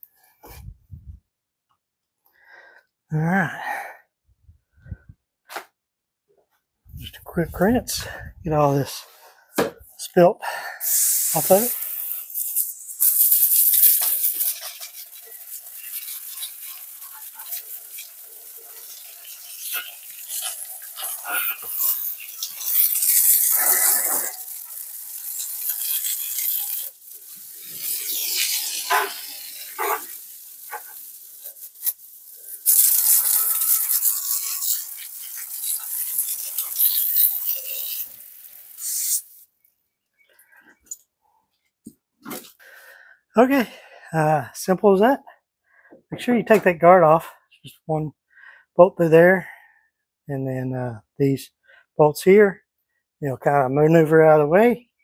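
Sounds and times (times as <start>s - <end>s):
water spraying from garden hose: 10.8s - 39.5s.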